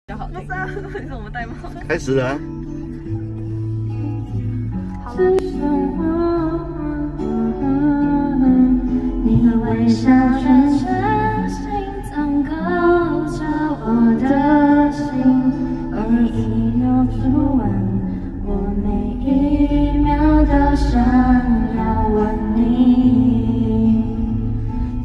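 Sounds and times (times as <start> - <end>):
pop backing track: 0.1 - 25.0
woman singing into a microphone: 5.0 - 25.0.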